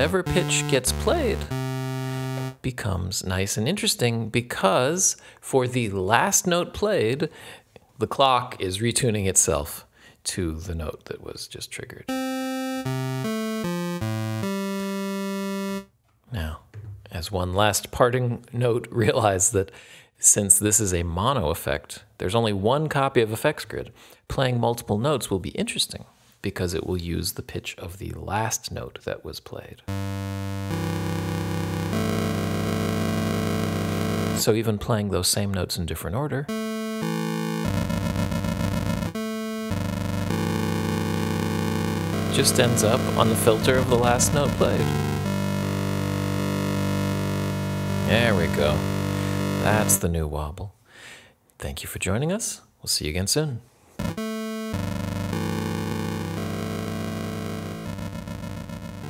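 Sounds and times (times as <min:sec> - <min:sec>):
gritty aliased synth tone: 0:00.0 - 0:02.6, 0:29.9 - 0:34.4, 0:36.5 - 0:50.0, 0:54.0 - 0:59.0.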